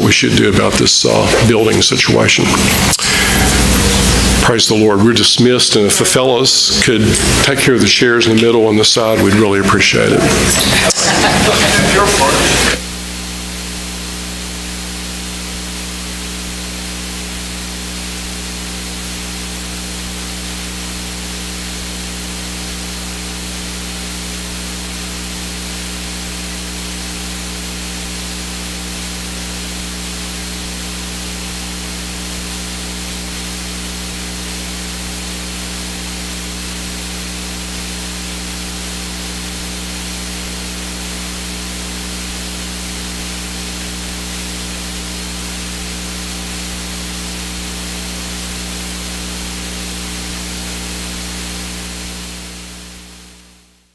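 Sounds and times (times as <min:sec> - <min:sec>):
electrical hiss: 0:00.0 - 0:04.9, 0:05.8 - 0:07.6, 0:10.0 - 0:53.9.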